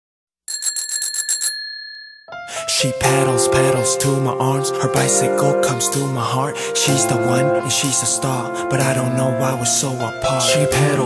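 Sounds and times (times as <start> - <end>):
bicycle bell ringing: 0.5 - 2.3.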